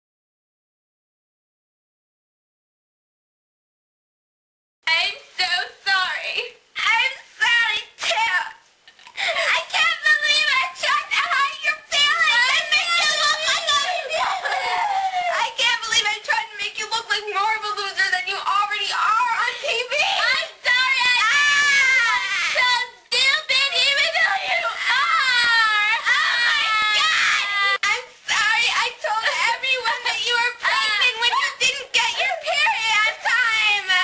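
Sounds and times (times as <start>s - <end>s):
women's high-pitched cries: 10.8s - 15.6s, 19.5s - 33.8s
girls shrieking and laughing: 12.0s - 15.4s, 19.5s - 22.8s, 24.2s - 27.8s.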